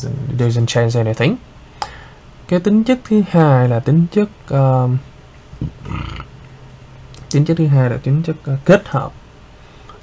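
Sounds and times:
low room hum: 0:00.0 - 0:10.0
man's throaty vocal noise: 0:05.6 - 0:06.4.

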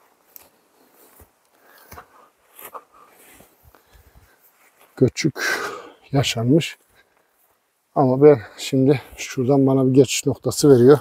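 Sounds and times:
footsteps on dry grass and gravel: 0:00.0 - 0:05.3, 0:06.2 - 0:08.0.

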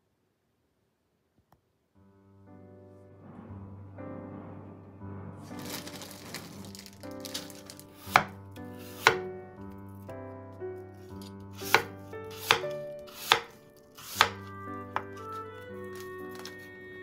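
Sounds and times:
soft background music: 0:02.0 - 0:17.0
knife slicing apple on cutting board: 0:08.0 - 0:09.2, 0:11.2 - 0:16.5.

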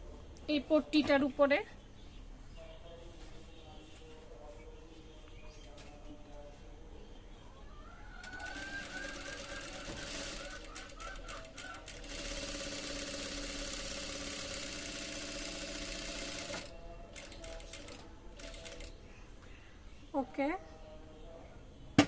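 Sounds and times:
sewing machine stitching: 0:08.6 - 0:18.9.

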